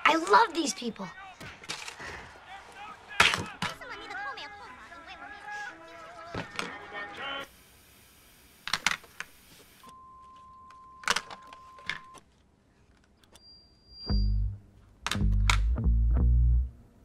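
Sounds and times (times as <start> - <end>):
television static hiss: 3.8 - 9.9.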